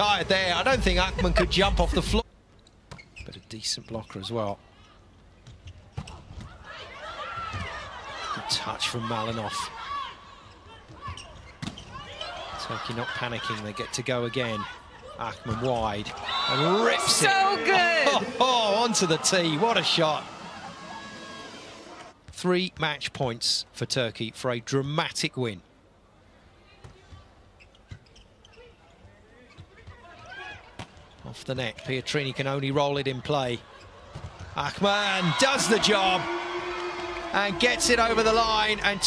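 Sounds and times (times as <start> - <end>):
shoes squeaking on court floor: 2.5 - 4.3, 27.6 - 30.1.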